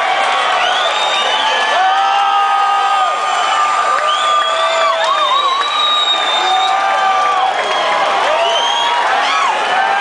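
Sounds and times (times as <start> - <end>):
crowd cheering and screaming: 0.0 - 10.0.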